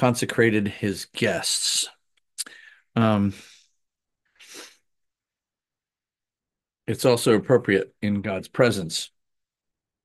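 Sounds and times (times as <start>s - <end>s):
man speaking: 0.0s - 3.5s, 6.9s - 9.2s
man breathing in: 2.4s - 3.8s, 4.4s - 4.9s.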